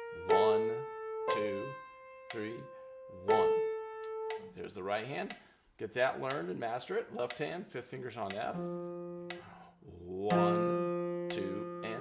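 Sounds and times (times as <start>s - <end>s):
slow piano melody: 0.0s - 4.6s, 8.6s - 9.7s, 10.3s - 12.0s
person speaking: 0.1s - 3.6s, 4.3s - 12.0s.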